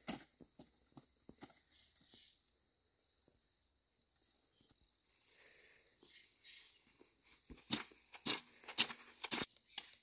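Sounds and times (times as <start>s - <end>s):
hoe blade striking dry soil: 7.5s - 9.9s.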